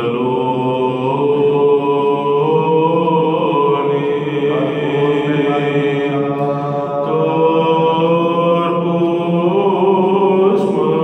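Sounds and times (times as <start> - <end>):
man chanting: 1.3 - 11.0.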